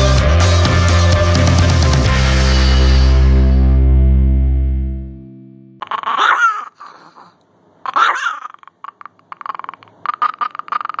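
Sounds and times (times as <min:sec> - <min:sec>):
dog squeaks: 0:05.8 - 0:07.3, 0:07.9 - 0:11.0
dog whining: 0:05.8 - 0:11.0.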